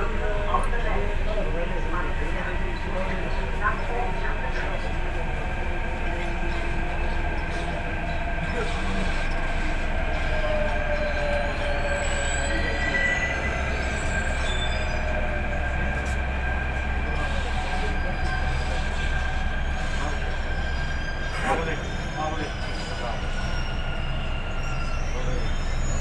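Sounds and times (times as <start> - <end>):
train rumble: 0.0 - 26.0.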